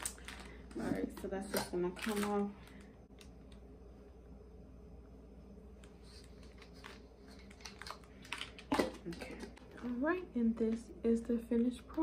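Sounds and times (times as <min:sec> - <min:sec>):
small items clicking and rustling: 0:00.0 - 0:03.3, 0:06.2 - 0:10.1.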